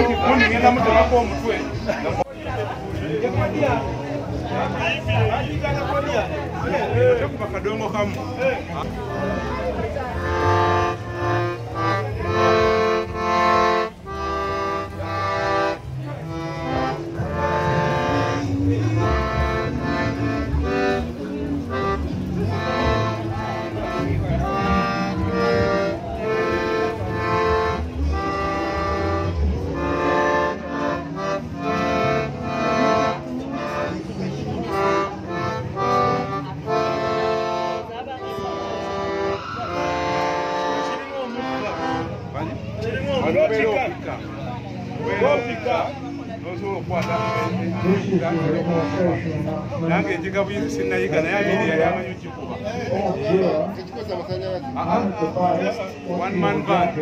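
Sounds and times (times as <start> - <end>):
piano accordion tune: 0.0 - 54.0.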